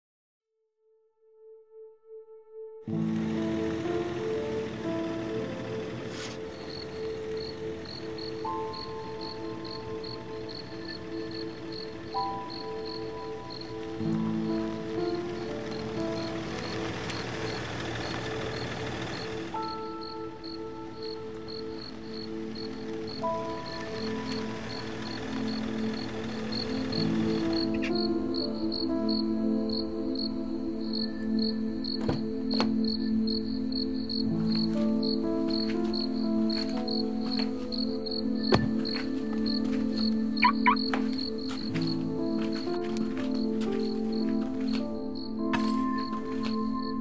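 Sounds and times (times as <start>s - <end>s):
film score: 1.2s - 47.0s
cricket chirping: 6.4s - 47.0s
quick rising chirps: 40.4s - 41.4s.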